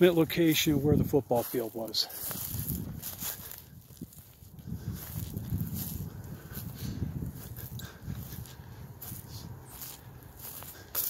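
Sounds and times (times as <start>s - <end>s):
wind buffeting microphone: 0.0s - 10.9s
footsteps on dry leaves: 0.0s - 11.0s.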